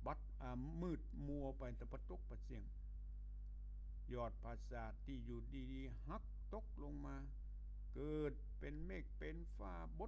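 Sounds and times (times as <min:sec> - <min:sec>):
man talking: 0:00.0 - 0:02.7, 0:04.1 - 0:10.0
steady low hum: 0:00.0 - 0:10.0.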